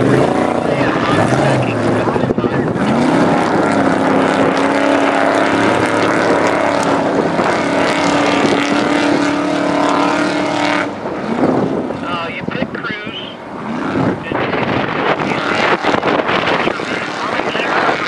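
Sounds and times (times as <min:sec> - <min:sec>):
truck engine accelerating: 0:00.0 - 0:18.0.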